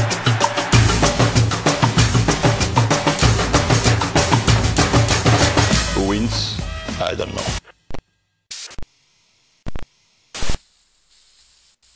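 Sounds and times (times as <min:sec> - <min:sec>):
harsh static bursts: 0:08.5 - 0:11.9
faint hiss: 0:09.1 - 0:11.9.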